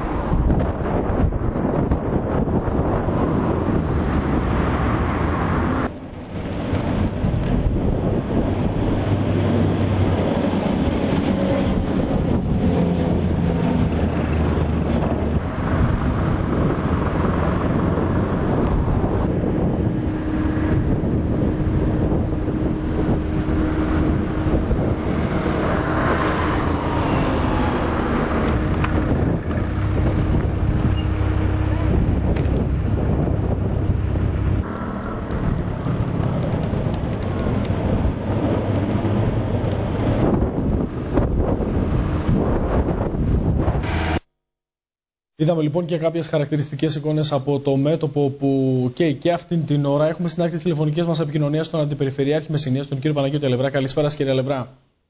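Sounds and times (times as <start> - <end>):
strong wind on microphone: 0.0 - 44.3.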